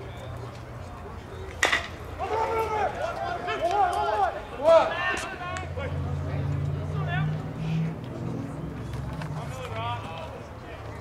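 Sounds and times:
players shouting chatter: 0.0s - 11.0s.

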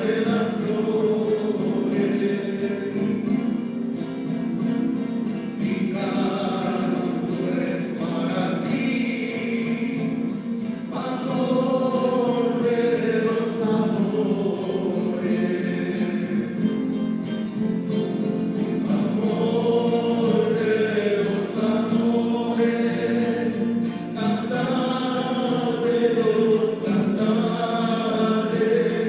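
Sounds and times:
choir singing a hymn: 0.0s - 3.6s, 5.4s - 17.2s, 18.4s - 29.0s.

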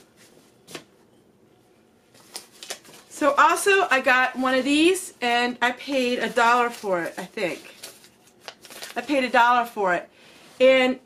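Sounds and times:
wrapping rustling: 2.1s - 5.0s, 5.8s - 9.7s.

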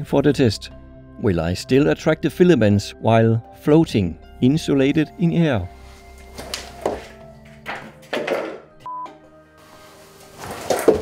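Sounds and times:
background music: 0.0s - 11.0s
thuds of landing on wooden floor: 6.4s - 8.7s.

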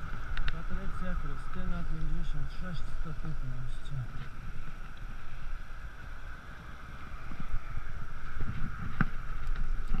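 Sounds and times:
bicycle road rumble: 0.0s - 10.0s
steady high hum: 0.0s - 10.0s
wind buffeting microphone: 0.0s - 10.0s
light ticks: 0.1s - 0.6s.

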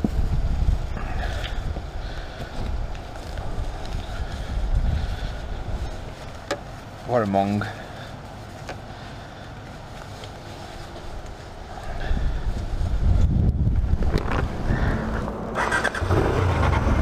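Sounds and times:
motorcycle engine rumbling: 0.0s - 17.0s.

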